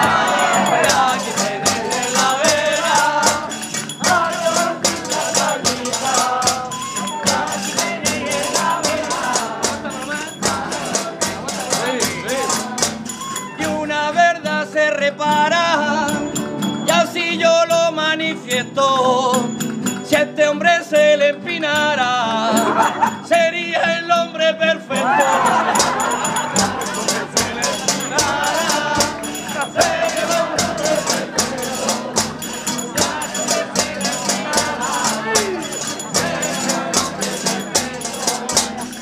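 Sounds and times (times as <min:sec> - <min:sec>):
rapid percussion beat: 0:00.0 - 0:14.4, 0:18.6 - 0:20.4, 0:22.5 - 0:23.5, 0:25.0 - 0:39.0
person singing ornamented melody: 0:00.0 - 0:19.5, 0:21.3 - 0:39.0.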